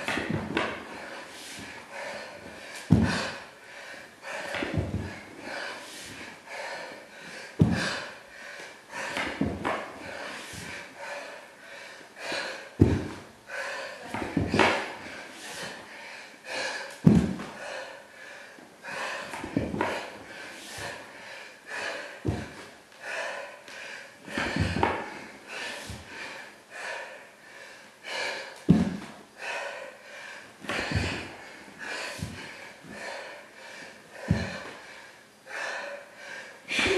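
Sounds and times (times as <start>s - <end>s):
man panting: 0.0s - 36.9s
thuds on hardwood floor: 2.9s - 3.3s, 4.5s - 5.2s, 7.6s - 8.0s, 9.2s - 9.9s, 12.8s - 13.2s, 14.1s - 14.8s, 17.0s - 17.6s, 19.4s - 20.0s, 22.2s - 22.6s, 24.4s - 25.0s, 28.7s - 29.1s, 30.7s - 31.3s, 34.2s - 34.6s.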